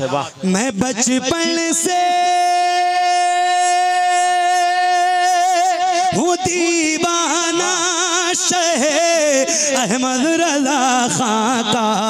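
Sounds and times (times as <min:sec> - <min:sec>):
man singing into a microphone: 0:00.5 - 0:12.0.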